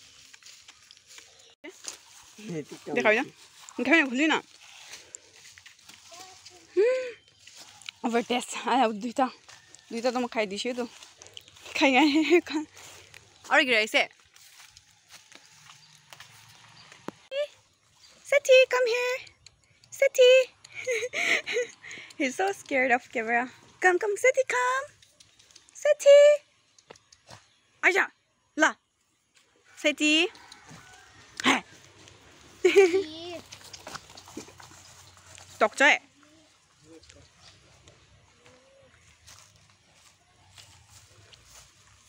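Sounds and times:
people talking: 2.4 - 4.4, 8.0 - 10.9, 11.7 - 12.7, 13.5 - 14.1, 17.3 - 17.5, 18.3 - 19.3, 19.9 - 24.9, 25.8 - 26.4, 31.4 - 31.6, 35.6 - 36.0.

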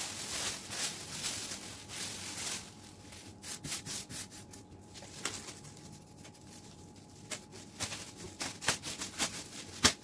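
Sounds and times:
plastic sheet crinkling: 0.0 - 10.0.

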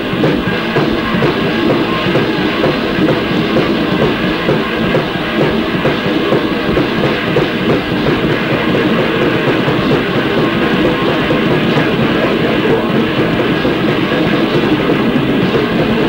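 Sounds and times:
distorted hardcore punk music: 0.0 - 16.0.

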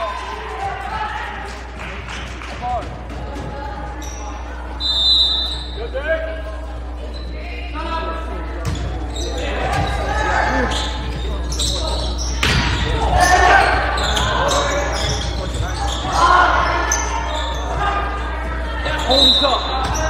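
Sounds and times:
sharp volleyball hits: 8.6 - 10.1, 12.3 - 13.3
people calling out: 9.2 - 20.0.

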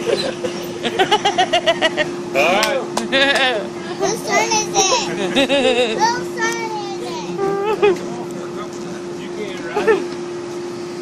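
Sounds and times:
person laughing: 0.0 - 2.1, 3.0 - 3.7, 5.0 - 6.0, 7.4 - 8.1, 9.8 - 10.1
steady hum: 0.0 - 11.0.

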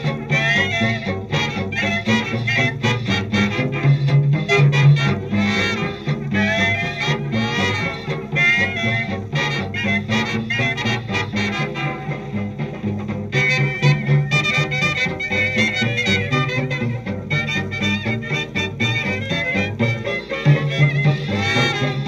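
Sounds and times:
swing dance band music: 0.0 - 22.0
trumpets: 0.0 - 22.0.

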